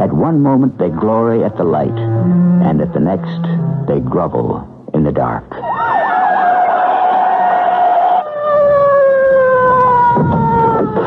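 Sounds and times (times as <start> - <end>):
police siren wailing: 1.4 - 4.8, 5.6 - 11.0.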